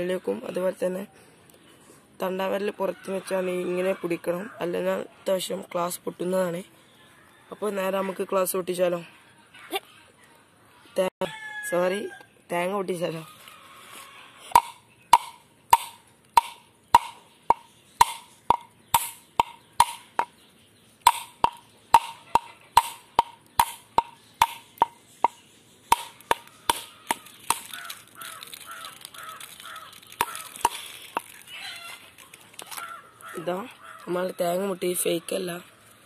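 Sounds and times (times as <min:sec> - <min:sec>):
glass knocking on coconut shell: 0:21.1 - 0:25.4.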